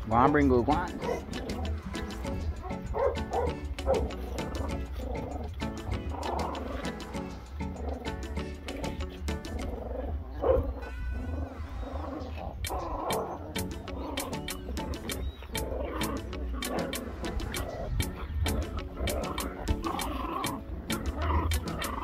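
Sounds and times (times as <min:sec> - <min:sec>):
background music with low beat: 0:00.0 - 0:10.7, 0:12.6 - 0:22.0
puppies growling: 0:00.8 - 0:22.0.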